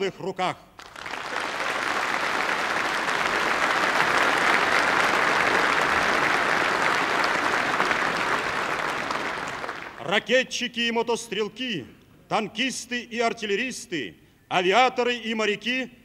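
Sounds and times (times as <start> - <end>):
audience applauding: 0.8 - 10.1.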